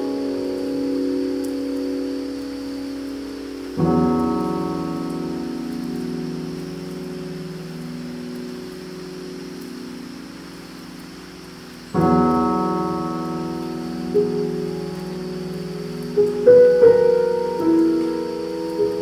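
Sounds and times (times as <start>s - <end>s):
steady high hiss: 0.0s - 19.0s
sustained keyboard chords: 12.0s - 19.0s.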